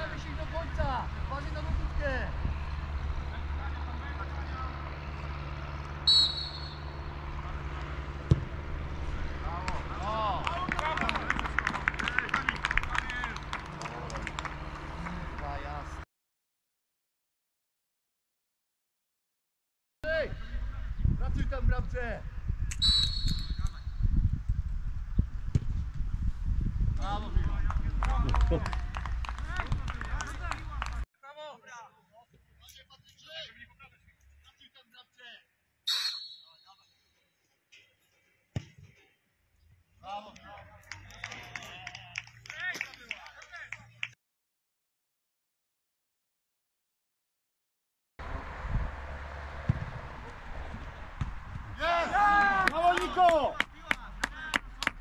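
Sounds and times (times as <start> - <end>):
referee's whistle blast: 6.0 - 6.9, 22.8 - 23.8, 35.9 - 36.8
football being kicked: 8.2 - 8.6, 25.4 - 26.0, 38.5 - 38.8, 49.6 - 50.0, 50.7 - 51.8
hand clapping: 10.4 - 15.2, 27.7 - 31.0, 40.9 - 44.2, 52.6 - 55.0
people shouting: 51.8 - 53.6.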